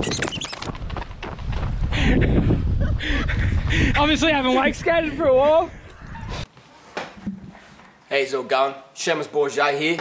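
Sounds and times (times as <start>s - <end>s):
wind rumbling on microphone: 0.0s - 6.5s.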